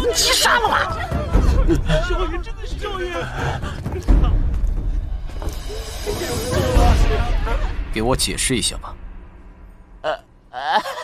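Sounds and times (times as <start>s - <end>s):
dramatic background music: 0.0s - 11.0s
deep rumble: 1.0s - 10.6s.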